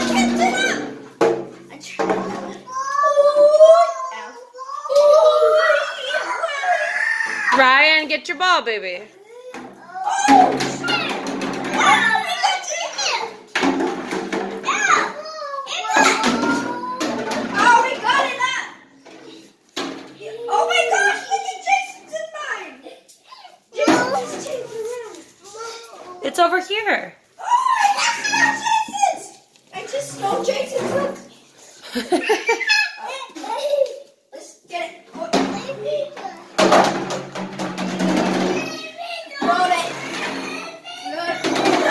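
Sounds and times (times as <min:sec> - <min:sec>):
young children calling and babbling: 0:00.0 - 0:07.6, 0:09.1 - 0:13.5, 0:14.6 - 0:26.3, 0:27.3 - 0:36.7, 0:38.0 - 0:41.9
plastic jug rattling across tiles: 0:10.4 - 0:12.1, 0:41.2 - 0:41.9
sharp knocks: 0:36.6 - 0:38.8.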